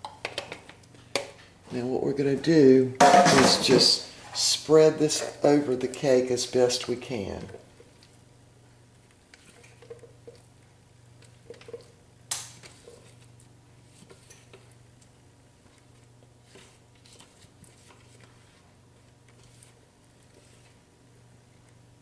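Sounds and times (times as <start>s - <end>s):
spatula scraping bowl: 19.3s - 20.8s.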